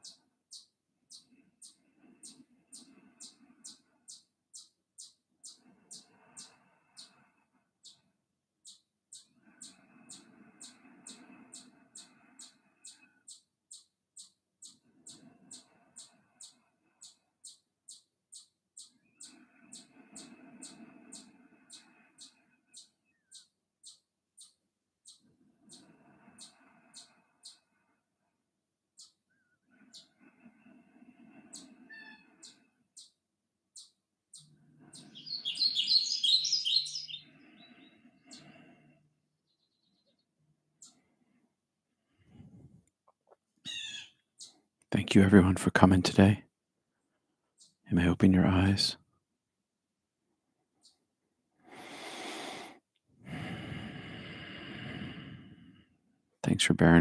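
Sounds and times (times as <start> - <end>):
bird warbling song: 0.0 - 27.7, 29.0 - 30.2, 31.4 - 38.6, 39.4 - 41.1, 43.6 - 44.6, 47.6 - 48.8
small bird chirping: 0.0 - 27.8, 28.9 - 30.2, 31.4 - 38.7, 39.4 - 41.1, 43.0 - 44.7, 47.4 - 48.8, 50.8 - 51.1
faint high chirps: 33.8 - 38.6.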